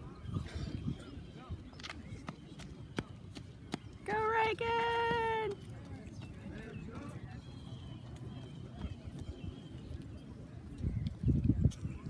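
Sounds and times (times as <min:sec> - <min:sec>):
running footsteps on a track: 0:00.0 - 0:12.0
low background voices: 0:05.4 - 0:12.0.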